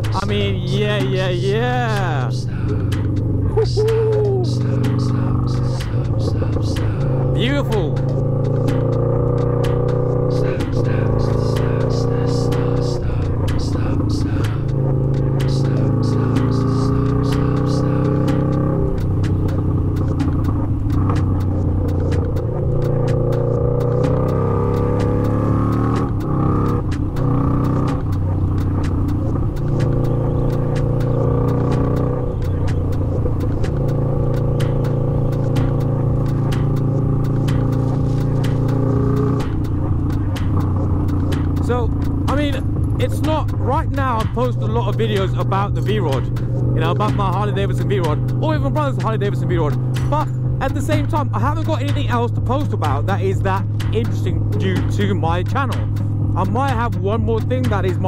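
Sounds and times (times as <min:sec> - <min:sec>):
motorcycle engine revving: 0:00.0 - 0:58.0.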